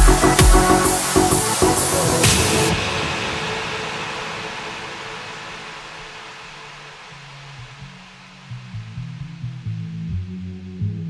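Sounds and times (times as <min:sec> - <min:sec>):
pulsing synth bass line: 0:00.0 - 0:02.9
trance music: 0:00.0 - 0:09.7.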